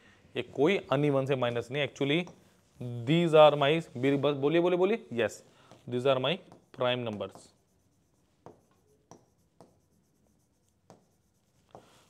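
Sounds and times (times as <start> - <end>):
marker scratching on whiteboard: 5.9 - 12.0.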